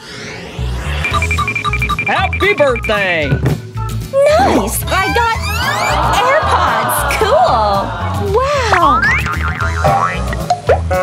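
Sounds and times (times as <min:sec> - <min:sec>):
rising whistle-like glide: 0:00.0 - 0:03.0, 0:05.3 - 0:06.3
upbeat background music: 0:01.0 - 0:11.0
wobbling boing: 0:08.7 - 0:11.0.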